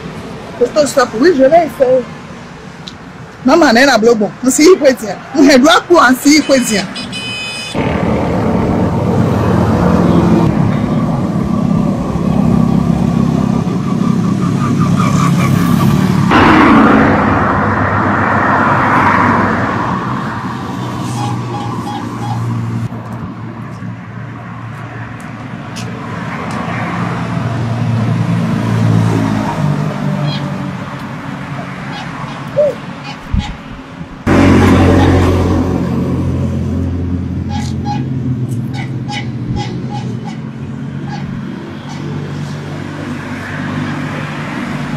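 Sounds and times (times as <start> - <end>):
vehicles passing on road: 0.0 - 44.9
loud vehicle passing: 4.8 - 44.9.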